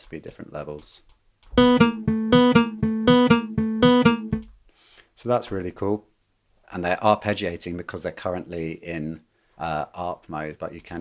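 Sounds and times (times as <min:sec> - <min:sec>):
arpeggiated plucked guitar notes: 0:01.6 - 0:04.5.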